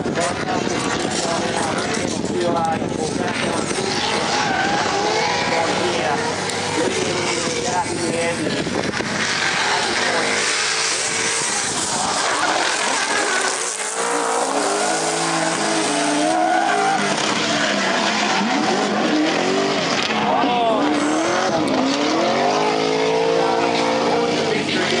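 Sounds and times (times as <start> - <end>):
car engines revving hard: 0.0 - 25.0
tyres screeching on asphalt: 0.4 - 25.0.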